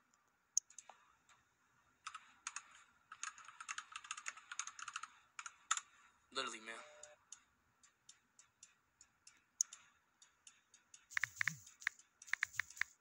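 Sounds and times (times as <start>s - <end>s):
typing on computer keyboard: 2.0s - 5.9s, 11.1s - 13.0s.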